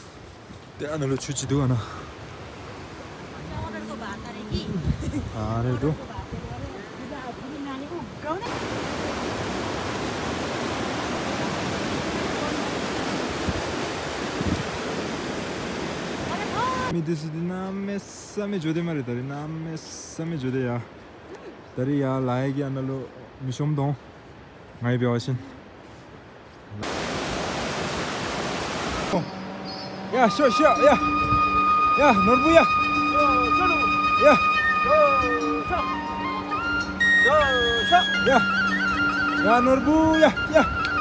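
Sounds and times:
mountain river rushing: 0.0s - 41.0s.

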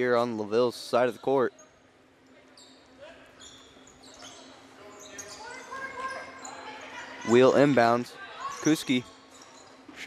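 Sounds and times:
sneaker squeaks on hardwood: 2.5s - 6.7s.

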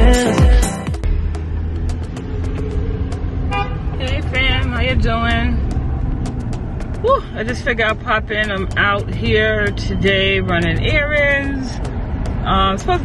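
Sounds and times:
car engine and road noise: 0.0s - 13.0s.

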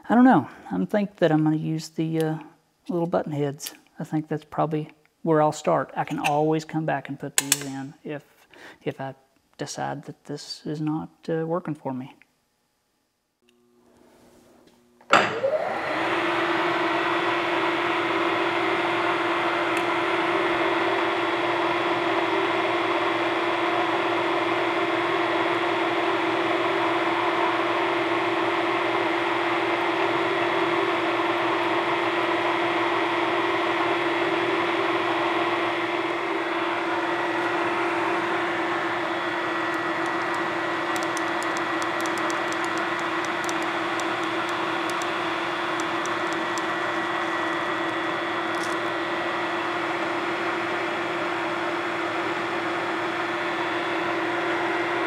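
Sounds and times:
shop machinery motor hum: 34.4s - 53.1s.

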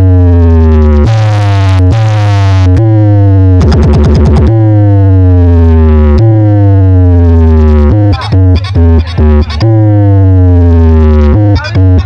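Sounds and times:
siren-like synth tone sliding down: 0.0s - 8.2s
heavy steady bass: 0.0s - 12.0s
electronic dance track: 0.1s - 12.0s.

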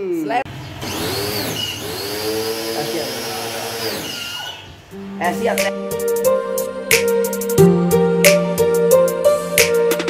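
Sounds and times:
pressure washer motor hum: 0.5s - 4.9s.

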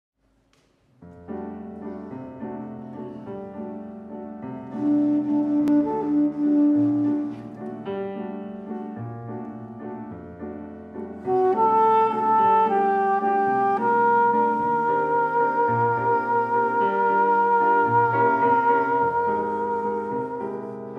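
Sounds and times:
jazz piano chords and melody: 1.0s - 20.9s
soprano saxophone melody: 4.7s - 7.6s, 11.2s - 20.9s.

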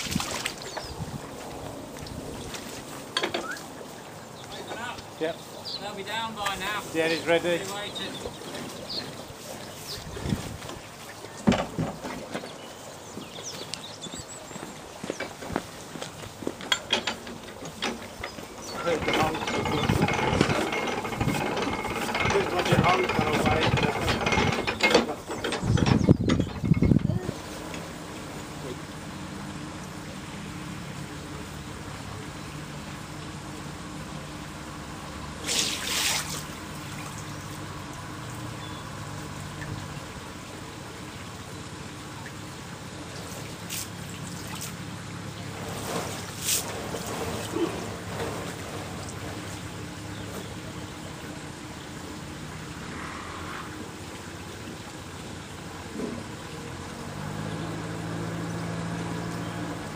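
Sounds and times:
boat engine humming: 0.0s - 59.9s
rushing water noise: 0.0s - 59.9s
ratchet and pawl clicking: 16.8s - 27.1s.

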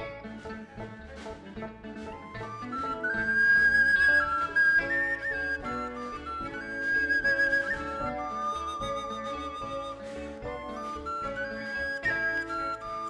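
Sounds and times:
soft instrumental accompaniment: 0.0s - 13.0s
wooden flute melody: 0.0s - 13.0s.

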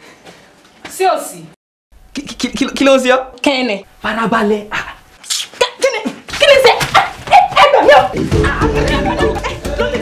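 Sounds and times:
man speaking: 2.1s - 5.0s.

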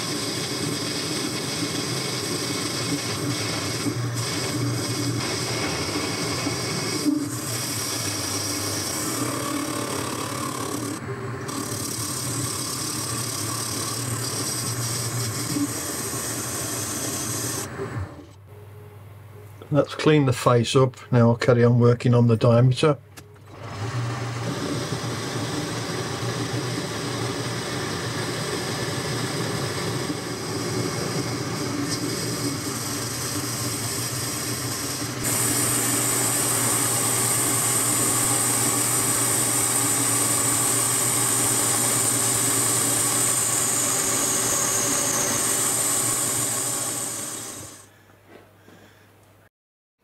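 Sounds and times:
metal lathe running: 0.0s - 18.2s, 23.5s - 47.9s
high hiss: 27.0s - 47.9s.

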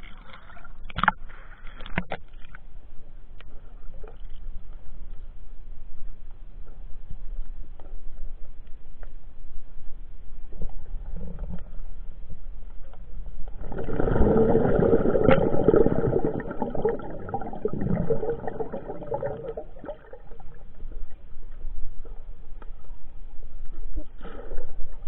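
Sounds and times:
underwater rushing and bubbling: 9.9s - 25.0s.

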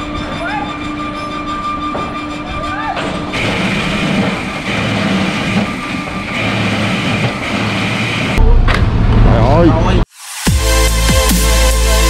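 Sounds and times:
music: 0.0s - 4.1s, 10.2s - 12.0s
machinery rumbling: 0.0s - 10.1s
heavy bass beat: 10.4s - 12.0s.

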